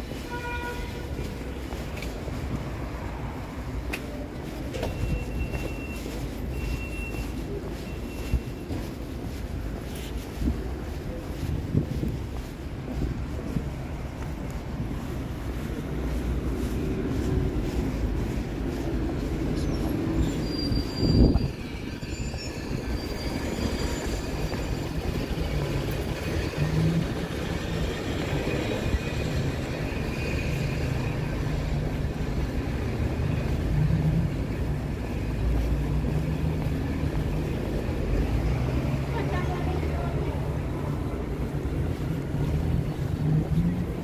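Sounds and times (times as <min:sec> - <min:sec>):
rumble of passing vehicles: 0:00.0 - 0:44.0
thin high squeal: 0:20.2 - 0:25.0.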